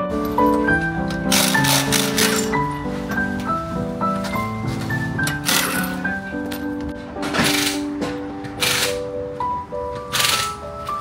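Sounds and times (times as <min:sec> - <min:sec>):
background music: 0:00.0 - 0:11.0
pneumatic impact wrench rattling: 0:01.3 - 0:02.6, 0:05.4 - 0:05.9, 0:07.4 - 0:07.9, 0:08.6 - 0:09.1, 0:10.1 - 0:10.6.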